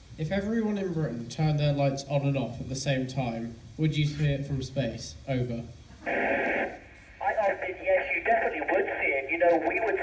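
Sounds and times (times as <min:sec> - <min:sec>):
radio hiss: 0:05.9 - 0:10.0
man's voice over radio: 0:07.2 - 0:10.0.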